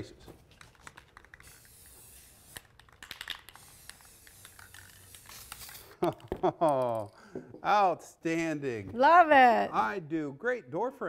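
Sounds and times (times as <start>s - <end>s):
spray can rattling: 0.4s - 7.1s
spray paint hissing: 0.6s - 6.2s.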